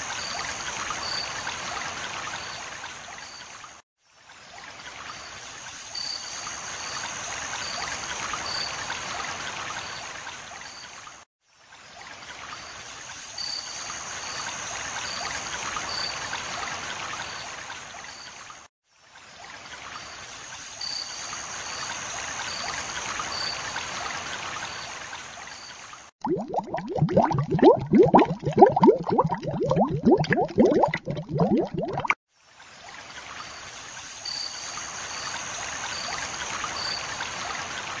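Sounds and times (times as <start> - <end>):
stream running water: 0.0 - 38.0
low bubbling: 26.2 - 32.2.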